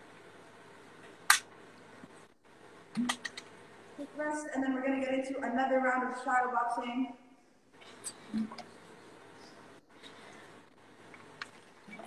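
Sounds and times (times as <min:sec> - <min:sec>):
sharp click: 0:01.3 - 0:01.5.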